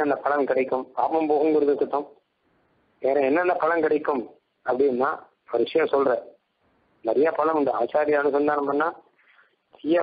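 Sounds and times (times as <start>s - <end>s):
man talking: 0.0s - 2.2s, 3.0s - 6.4s, 7.0s - 9.1s, 9.7s - 10.0s.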